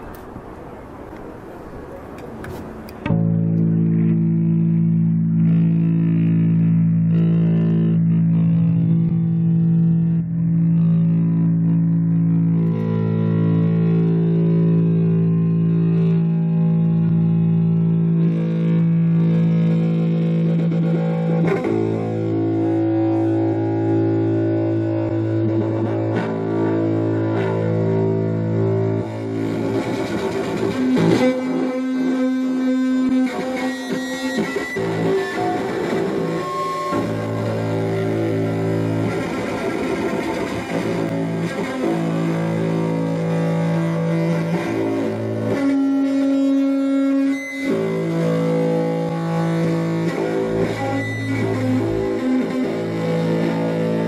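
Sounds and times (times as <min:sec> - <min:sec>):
synthesizer drone: 0:00.0 - 0:54.0
electric bass guitars with effects: 0:02.1 - 0:54.0.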